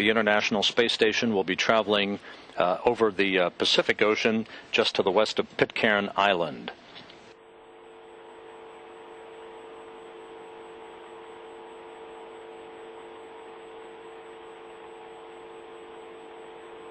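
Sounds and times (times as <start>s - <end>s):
electrical hum with hiss: 0.0s - 16.9s.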